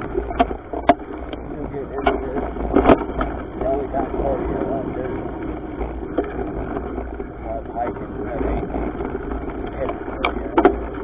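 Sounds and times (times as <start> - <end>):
bike tyre and frame rattle: 0.0 - 11.0
wind buffeting microphone: 0.0 - 11.0.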